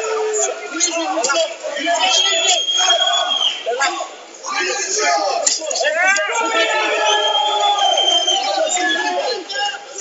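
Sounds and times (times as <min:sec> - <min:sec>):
voices shouting: 0:00.0 - 0:10.0.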